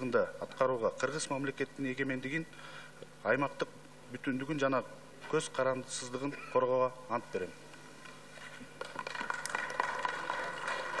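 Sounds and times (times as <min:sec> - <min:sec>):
crowd applauding: 0:08.8 - 0:11.0.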